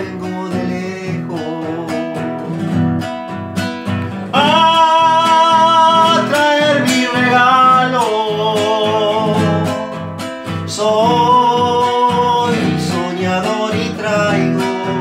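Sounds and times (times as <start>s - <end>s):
man singing long notes: 0.0s - 2.6s, 4.3s - 10.0s, 10.7s - 15.0s
classical guitar strummed: 0.0s - 15.0s.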